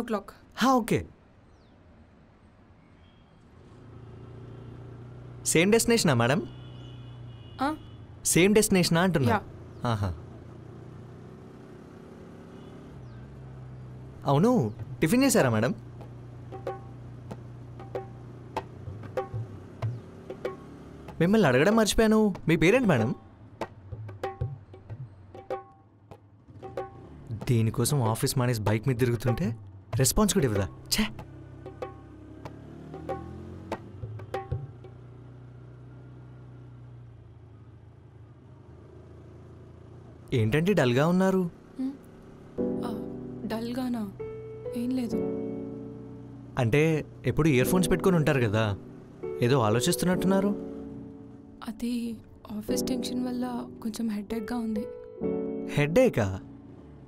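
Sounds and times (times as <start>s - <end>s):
motorbike engine running: 9.0s - 44.2s, 45.6s - 51.4s.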